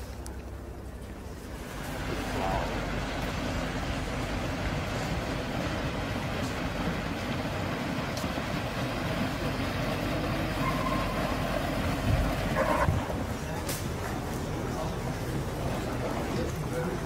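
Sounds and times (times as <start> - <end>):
low rumbling background noise: 0.0 - 17.0.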